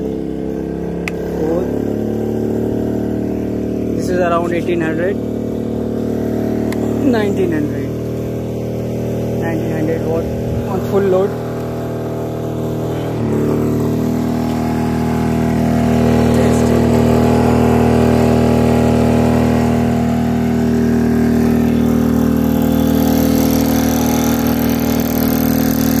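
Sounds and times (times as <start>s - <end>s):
generator engine running: 0.0s - 26.0s.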